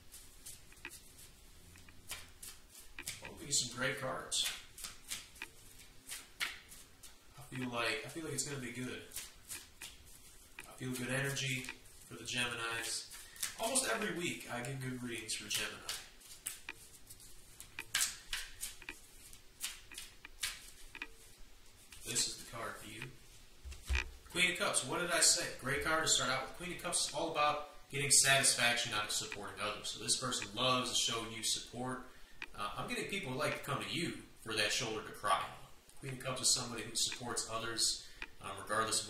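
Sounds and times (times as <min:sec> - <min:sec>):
cards being shuffled: 0:00.0 - 0:22.4.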